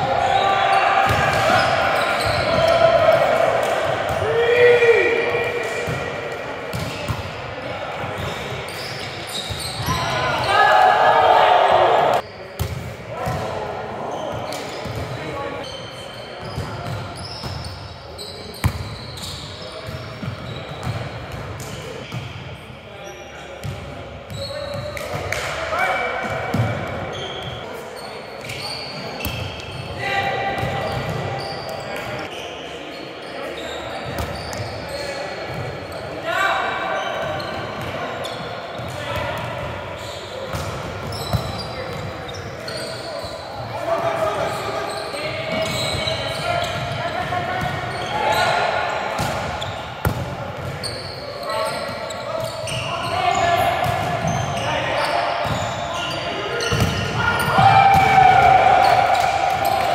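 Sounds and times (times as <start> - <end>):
players shouting: 0.0 - 6.2, 9.8 - 12.2, 52.7 - 59.9
volleyball hits: 56.7 - 59.9.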